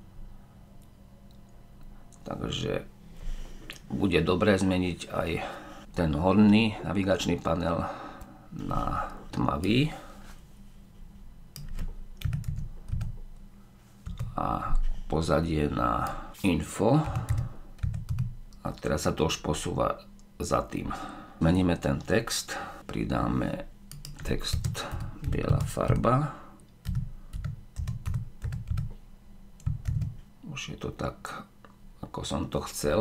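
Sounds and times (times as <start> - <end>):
typing on a keyboard: 11.6 - 13.2, 17.0 - 18.3, 23.9 - 26.0, 26.8 - 28.9, 29.6 - 30.2.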